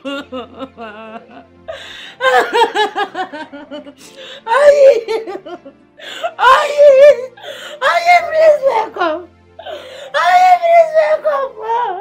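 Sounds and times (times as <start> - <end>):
woman wailing and sobbing: 0.0 - 12.0.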